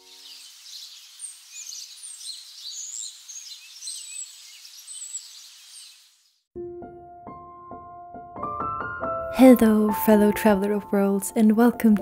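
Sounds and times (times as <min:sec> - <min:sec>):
outdoor ambience hiss: 0:00.0 - 0:06.4
small birds chirping: 0:00.0 - 0:06.5.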